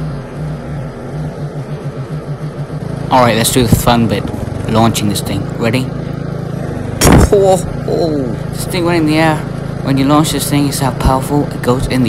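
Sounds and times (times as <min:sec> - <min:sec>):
lawn mower engine running: 0:00.0 - 0:12.0.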